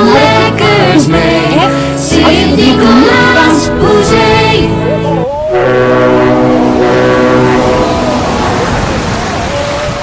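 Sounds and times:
boat horn blast: 5.0 - 9.9.

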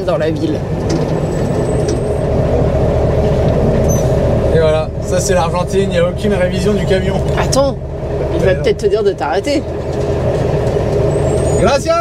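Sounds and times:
diesel truck engine running: 0.0 - 12.0.

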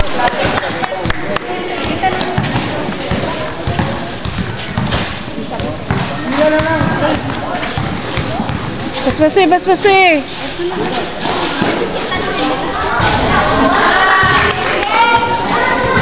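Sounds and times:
basketball bouncing: 0.0 - 10.0, 13.0 - 16.0
spectators shouting: 12.3 - 16.0.

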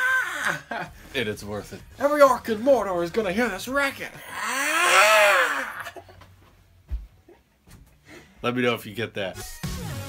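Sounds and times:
person howling: 0.0 - 0.6, 4.2 - 6.0.

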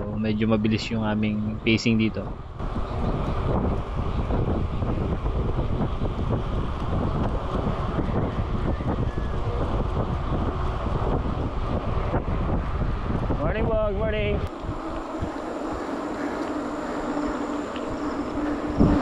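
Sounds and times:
wind rushing over microphone: 0.0 - 19.0.

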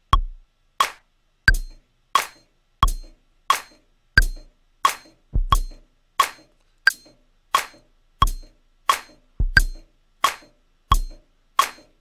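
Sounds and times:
electronic percussive hits: 0.1 - 12.0.

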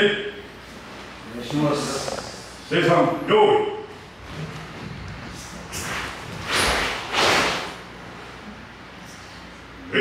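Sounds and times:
loud swishes of movement: 5.2 - 7.9.

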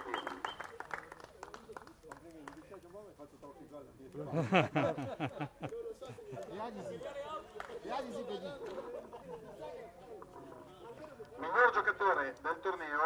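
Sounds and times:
overlapping voices chatting: 0.0 - 13.0.

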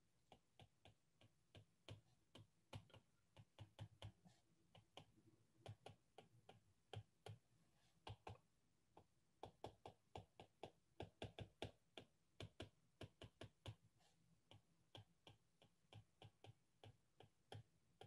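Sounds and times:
stylus tapping on tablet screen: 0.2 - 13.8, 14.4 - 18.0.

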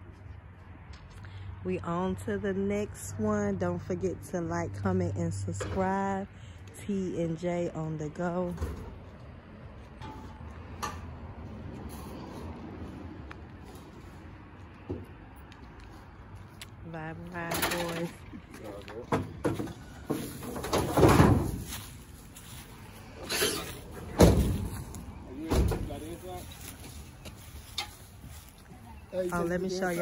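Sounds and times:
voices: 1.7 - 8.8, 16.6 - 30.0.

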